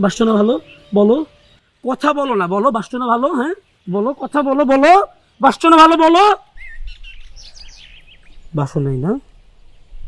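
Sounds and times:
birds chirping faintly: 0.0 - 10.0.

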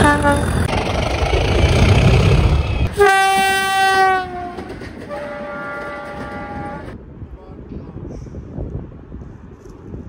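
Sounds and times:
locomotive horn long note: 0.0 - 0.7, 2.8 - 7.0
diesel locomotive passing: 0.0 - 7.6.

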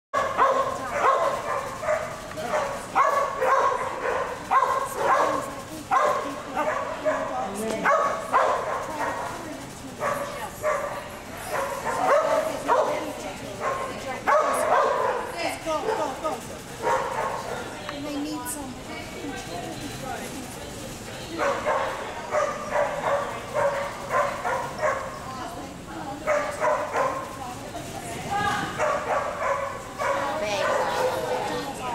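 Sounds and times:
dog barking: 0.2 - 9.4, 10.0 - 16.1, 16.8 - 17.6, 21.4 - 25.2, 26.2 - 27.3, 28.8 - 31.8.

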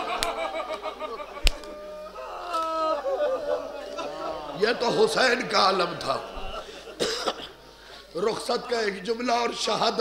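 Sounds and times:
short cough: 7.0 - 7.6.

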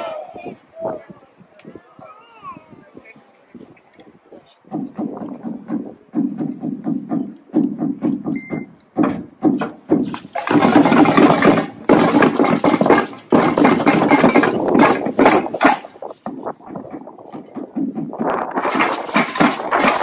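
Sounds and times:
children beating drums: 4.7 - 20.0.

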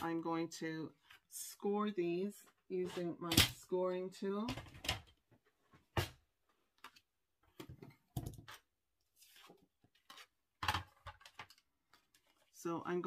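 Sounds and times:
paper rustle: 9.1 - 12.6.

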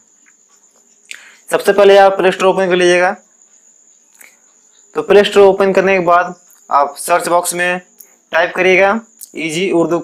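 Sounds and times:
person speaking: 1.1 - 3.3, 4.2 - 10.0.

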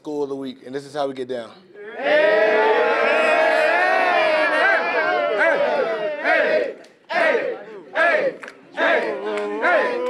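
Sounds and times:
group chanting and yelling: 1.8 - 10.0.

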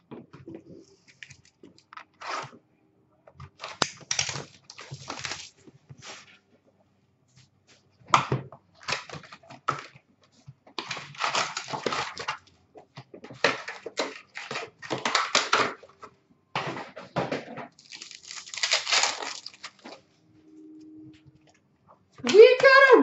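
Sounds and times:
wrappers torn and crinkled: 3.6 - 5.6, 10.8 - 12.4, 17.8 - 20.0.

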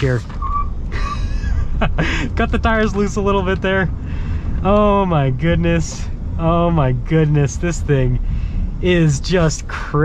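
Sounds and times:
deep road rumble: 0.0 - 10.0
tires hissing: 0.0 - 10.0.

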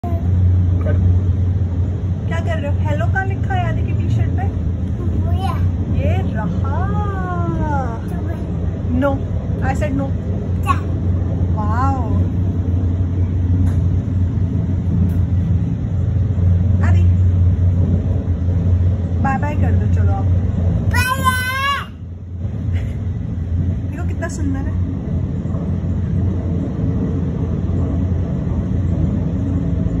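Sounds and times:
train rumbling: 0.0 - 30.0.

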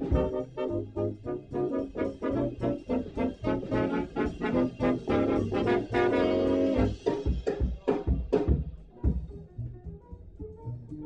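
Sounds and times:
jazz horn section phrases: 0.0 - 7.5
rhythm section: 0.0 - 9.3.

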